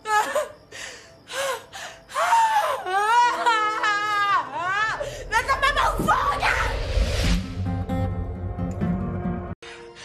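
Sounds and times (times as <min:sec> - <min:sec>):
woman crying hysterically: 0:00.0 - 0:00.7, 0:01.3 - 0:05.1.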